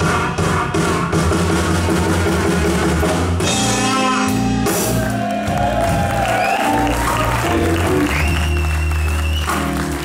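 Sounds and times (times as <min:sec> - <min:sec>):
drum kit: 0:00.0 - 0:10.0
electric bass guitar: 0:02.0 - 0:10.0.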